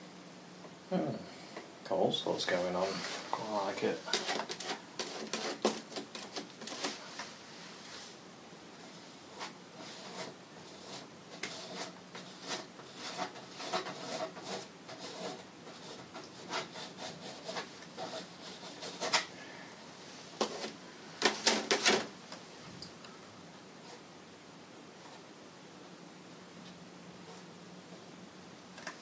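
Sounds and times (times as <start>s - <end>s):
palette knife scraping canvas: 9.4s - 19.3s.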